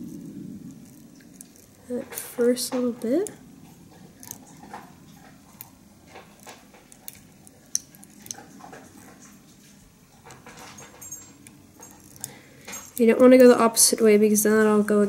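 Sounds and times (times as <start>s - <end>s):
light ticks and rustles of handling: 0.0s - 13.7s.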